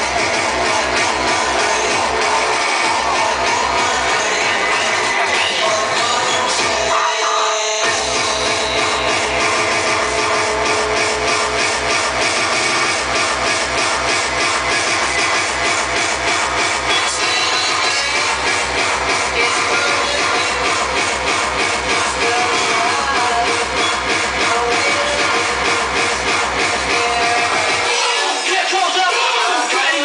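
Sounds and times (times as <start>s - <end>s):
fast kick drum: 0.0s - 6.8s, 7.9s - 27.9s
hardcore techno over sound system: 0.0s - 30.0s.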